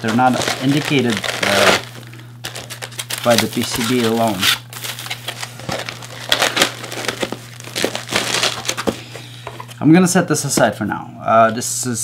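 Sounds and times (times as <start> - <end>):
foam rustling and crinkling in box: 0.0 - 9.0
steady low hum: 0.0 - 12.0.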